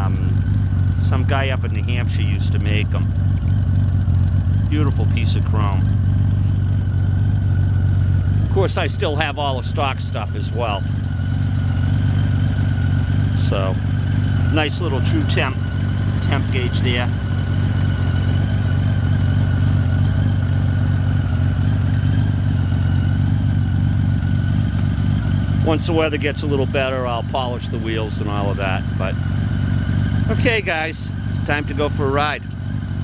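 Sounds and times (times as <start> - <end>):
motorcycle engine idling: 0.0 - 33.0.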